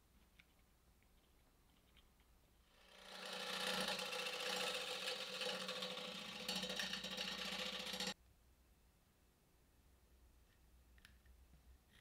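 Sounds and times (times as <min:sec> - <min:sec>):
wood lathe motor whine: 0:02.7 - 0:08.2.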